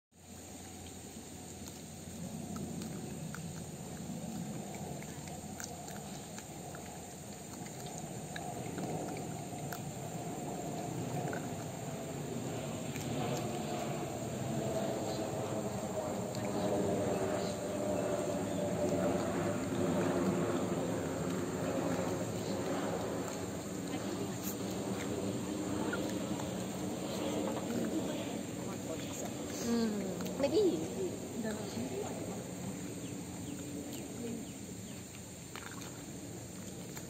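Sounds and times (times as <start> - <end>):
dull mid-range noise: 0.1 - 37.0.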